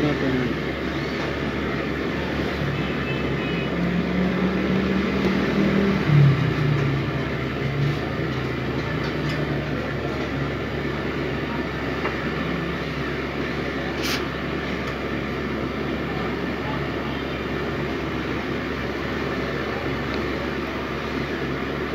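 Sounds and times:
low rumbling background noise: 0.0s - 21.9s.

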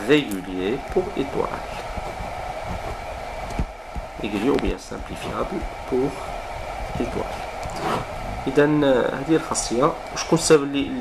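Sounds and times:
steady background hiss: 0.0s - 11.0s
pen scratching on paper: 7.7s - 8.0s.

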